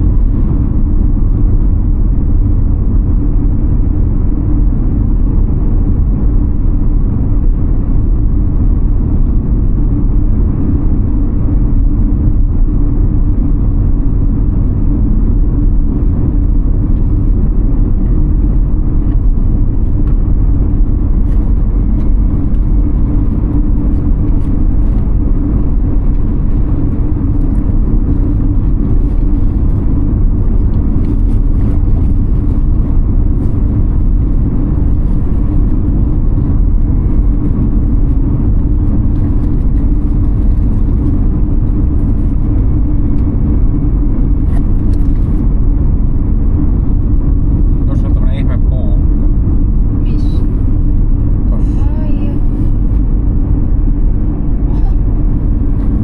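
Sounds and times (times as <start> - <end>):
car tyre and road noise: 0.0 - 56.0.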